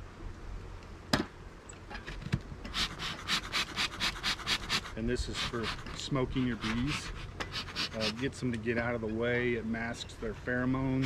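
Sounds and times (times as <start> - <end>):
bellows puffing air: 2.6 - 8.3.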